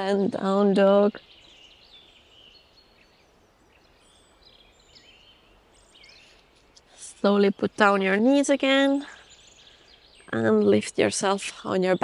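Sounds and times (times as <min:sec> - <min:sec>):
bird chirps and calls: 0:00.0 - 0:12.0.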